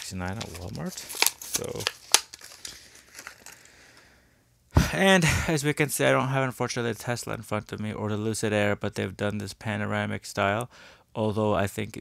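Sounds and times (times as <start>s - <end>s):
cardboard packaging cracking: 0.0s - 3.6s
packaging crinkles and clicks: 0.0s - 3.7s.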